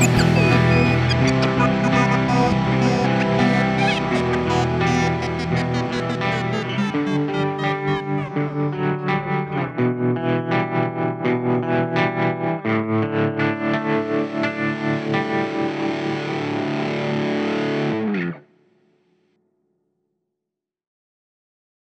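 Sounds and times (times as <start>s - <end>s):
distorted electric guitar: 0.0s - 18.5s.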